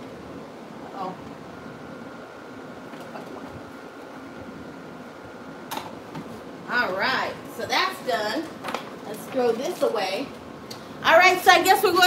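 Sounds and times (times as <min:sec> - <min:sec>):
faint high whine: 0:00.0 - 0:12.0
fan-like hum: 0:00.0 - 0:12.0.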